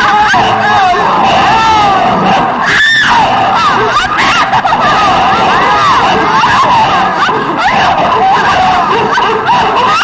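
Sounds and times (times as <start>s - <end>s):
person screaming: 0.0s - 10.0s.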